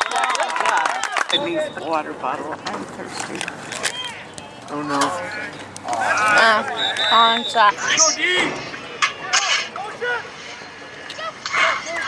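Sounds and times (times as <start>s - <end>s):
crowd background noise: 0.0s - 12.0s.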